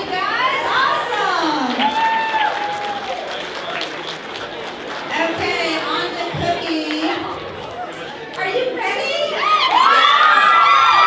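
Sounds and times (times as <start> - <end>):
crowd chatter: 0.0 - 11.0
children shouting: 9.2 - 11.0.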